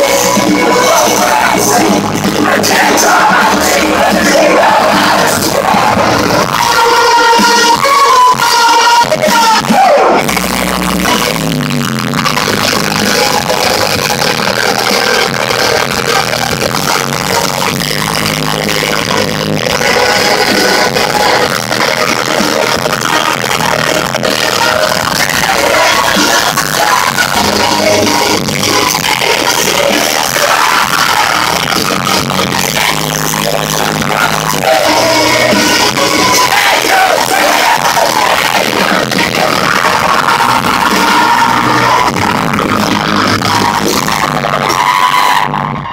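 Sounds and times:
rock band playing live: 0.0 - 45.9.

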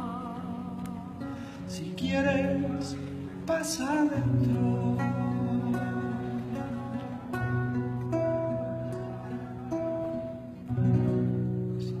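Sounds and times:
acoustic guitar chord ringing: 0.0 - 12.0.

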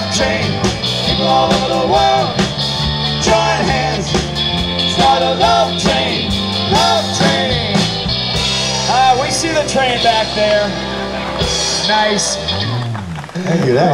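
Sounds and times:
drum kit: 0.0 - 13.8
bass guitar: 0.0 - 13.9
electric guitar: 0.0 - 13.9.

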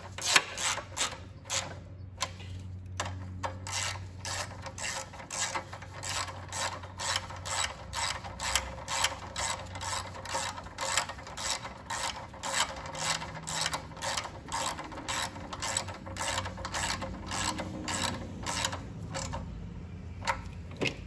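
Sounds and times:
ratchet wrench clicking: 0.0 - 19.5.

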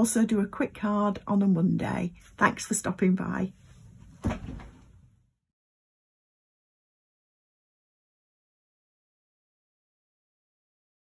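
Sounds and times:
single thump: 4.2 - 4.8.

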